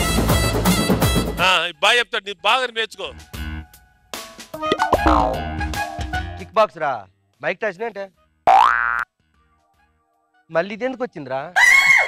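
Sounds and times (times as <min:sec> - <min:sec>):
tone gliding upward: 0:04.7 - 0:05.5.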